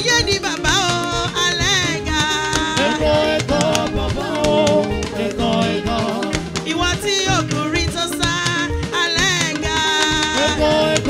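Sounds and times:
drums and percussion: 0:00.0 - 0:11.0
woman singing: 0:00.0 - 0:11.0.

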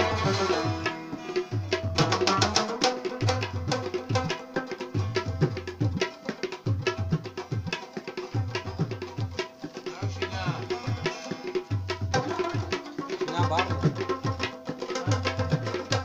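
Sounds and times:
fast plucked rubab melody: 0:00.0 - 0:16.0
tabla rhythm with bass strokes: 0:00.0 - 0:16.0.

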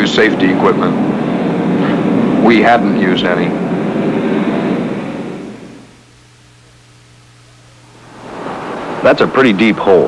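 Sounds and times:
rushing rumble: 0:00.0 - 0:06.0
faint low hum: 0:00.0 - 0:10.0.

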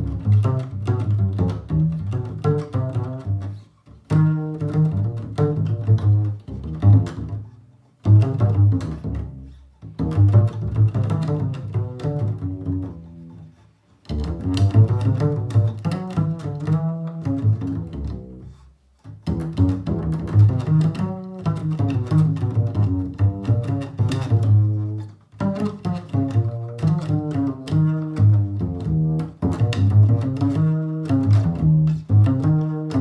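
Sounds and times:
double bass plucked notes: 0:00.0 - 0:33.0.

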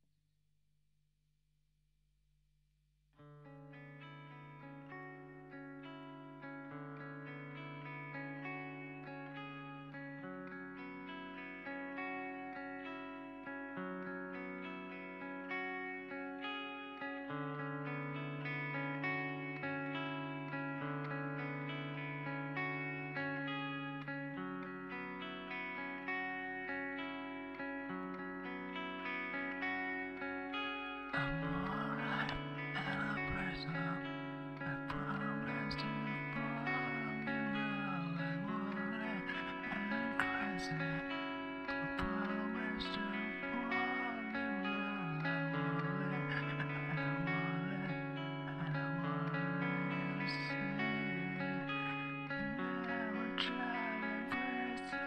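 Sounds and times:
guitar picking fast notes: 0:03.2 - 0:55.0.

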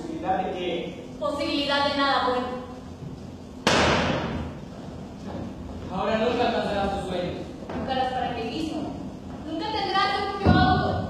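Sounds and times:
sharp bang with echo: 0:03.6 - 0:04.5.

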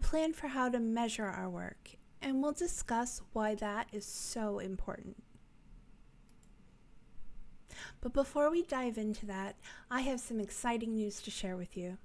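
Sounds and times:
short breath in: 0:07.7 - 0:08.0.

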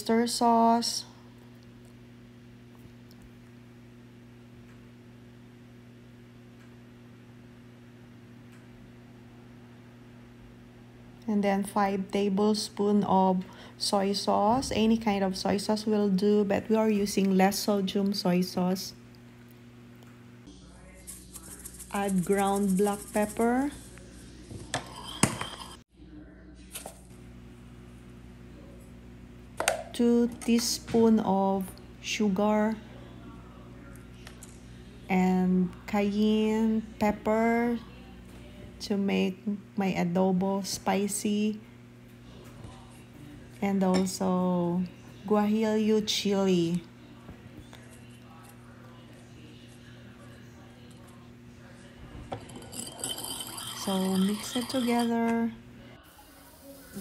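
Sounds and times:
low room hum: 0:00.0 - 0:57.0
spoons clinking against ceramic bowl: 0:24.7 - 0:25.8, 0:52.3 - 0:55.2.

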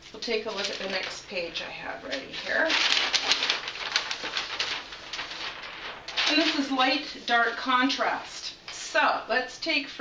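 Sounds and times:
paper sheet rustling and crinkling: 0:00.1 - 0:08.9.

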